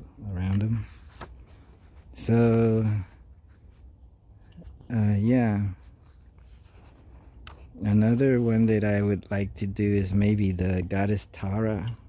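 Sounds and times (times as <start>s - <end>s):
paper page turning: 0.4s - 3.9s, 5.6s - 9.1s.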